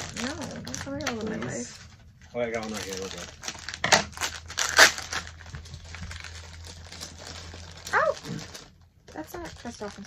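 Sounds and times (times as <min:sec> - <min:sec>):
plastic crinkling: 0:00.0 - 0:10.0
plastic packets tearing: 0:00.0 - 0:10.0.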